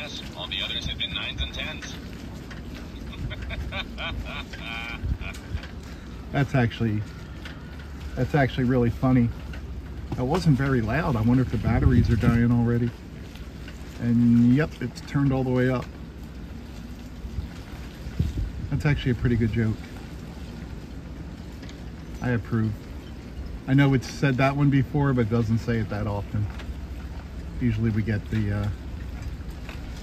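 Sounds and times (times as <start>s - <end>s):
wind rumbling on microphone: 0.0s - 30.0s
recorded laughter from tinny speaker: 2.9s - 5.6s.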